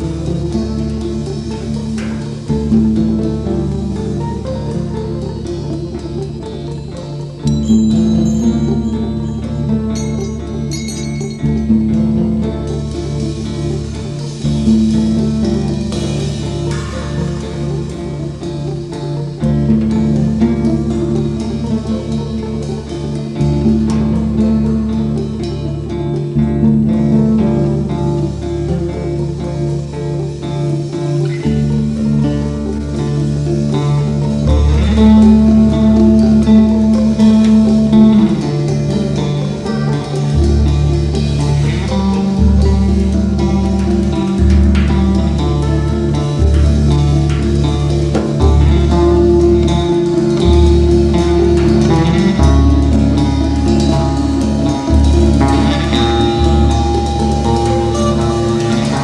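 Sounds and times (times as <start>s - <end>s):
bass guitar: 0.0s - 59.0s
electric guitar: 0.0s - 59.0s
rock band playing live: 0.0s - 59.0s.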